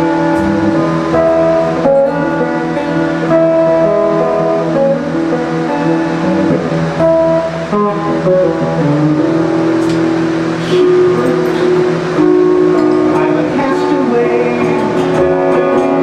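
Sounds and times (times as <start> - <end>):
guitar playing: 0.0 - 16.0.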